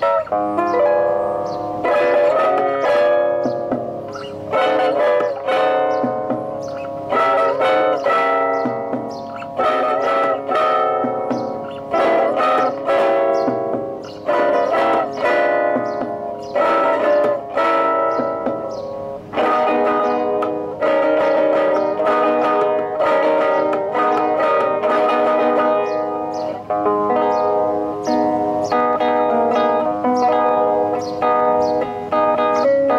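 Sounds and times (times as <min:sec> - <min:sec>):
classical guitar fingerstyle: 0:00.0 - 0:32.9.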